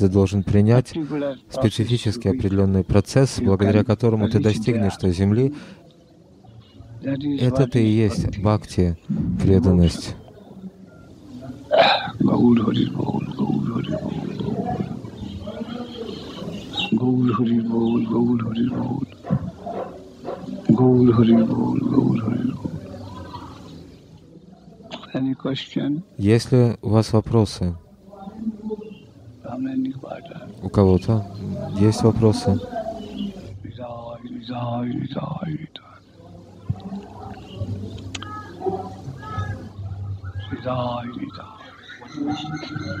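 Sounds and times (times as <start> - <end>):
man speaking: 0.0 - 5.8, 6.8 - 10.3, 11.5 - 23.0, 25.0 - 36.1, 40.2 - 43.0.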